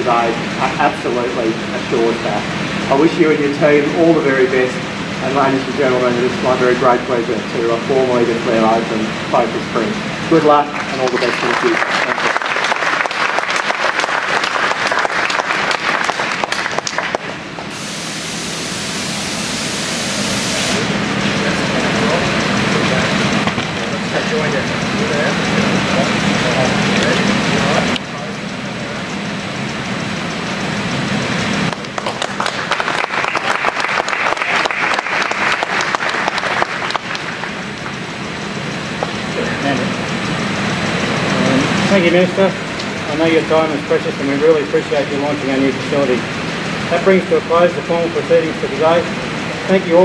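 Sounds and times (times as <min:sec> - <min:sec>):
crowd applauding: 0:10.7 - 0:17.4, 0:31.7 - 0:38.0
crowd chattering: 0:20.8 - 0:32.0.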